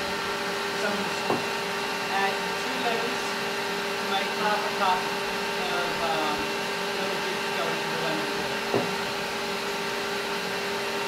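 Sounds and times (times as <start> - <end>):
stand mixer motor running: 0.0 - 11.0.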